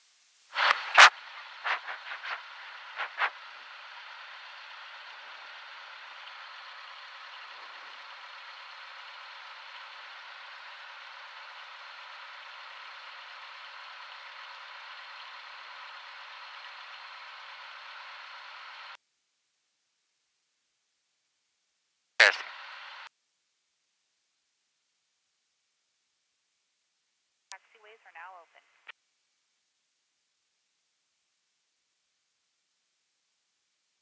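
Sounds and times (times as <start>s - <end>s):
intercom hiss: 0.5s - 8.0s, 22.2s - 23.1s, 27.5s - 28.9s
aircraft engine idling: 1.2s - 19.0s.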